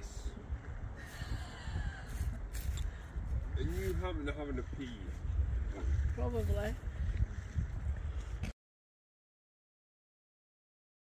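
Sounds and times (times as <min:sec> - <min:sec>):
wind buffeting microphone: 0:00.0 - 0:08.5.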